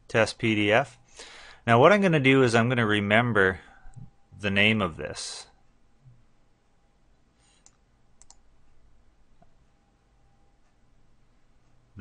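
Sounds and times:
faint computer mouse clicks: 7.5s - 8.4s.

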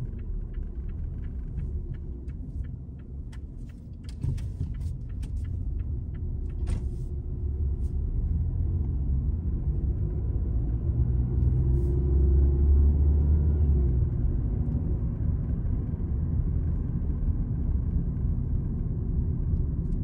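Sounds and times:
car road and engine noise: 0.0s - 20.0s.

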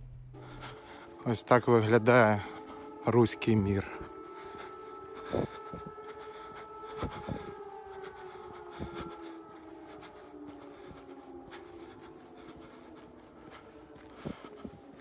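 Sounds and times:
air-raid siren: 0.0s - 15.0s.

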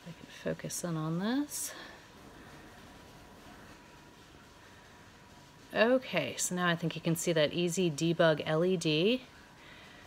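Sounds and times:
computer fans whirring: 0.0s - 10.0s.

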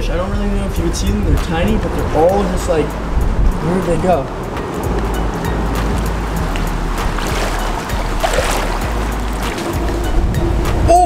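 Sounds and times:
background music: 0.0s - 11.0s
wind rumble on microphone: 0.0s - 11.0s
seawater sloshing and lapping: 4.3s - 10.9s.

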